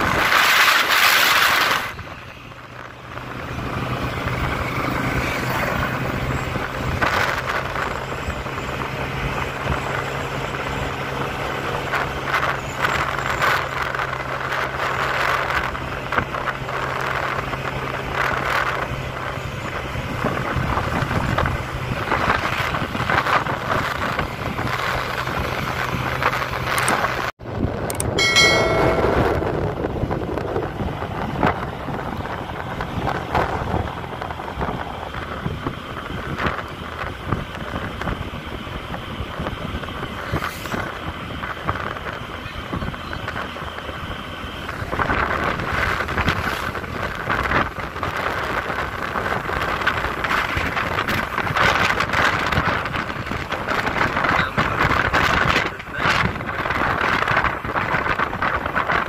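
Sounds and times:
motorcycle engine cruising: 0:00.0 - 0:59.0
wind rushing over microphone: 0:00.0 - 0:59.0
brief pitched tone: 0:28.0 - 0:29.7.

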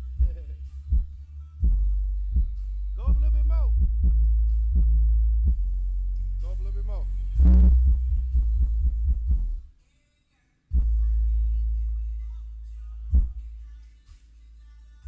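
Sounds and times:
heavy bass music through subwoofers: 0:00.0 - 0:09.7, 0:10.7 - 0:15.0
voice in music track: 0:02.9 - 0:03.8, 0:06.3 - 0:07.7.

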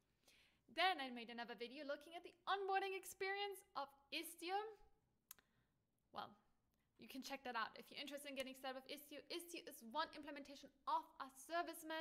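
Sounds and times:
short breath: 0:00.2 - 0:00.6
mouth click: 0:05.3 - 0:05.5.

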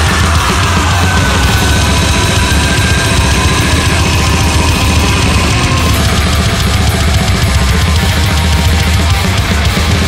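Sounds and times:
extreme metal music: 0:00.0 - 0:10.0.

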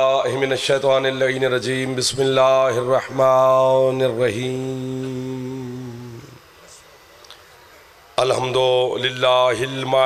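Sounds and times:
man chanting a long note: 0:00.0 - 0:06.4
faint click: 0:07.2 - 0:07.4.

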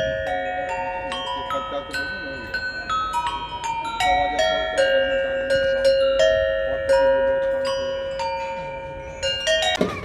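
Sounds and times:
metal bells struck with mallet: 0:00.0 - 0:10.0.

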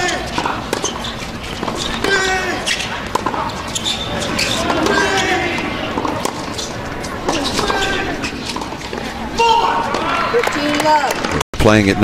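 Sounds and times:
tennis ball struck by rackets: 0:00.0 - 0:09.1
people's voices: 0:01.6 - 0:12.0.

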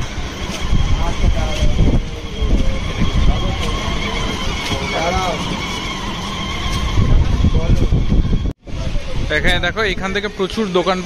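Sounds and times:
voices of people: 0:00.0 - 0:11.0
wind buffeting microphone: 0:00.0 - 0:11.0.

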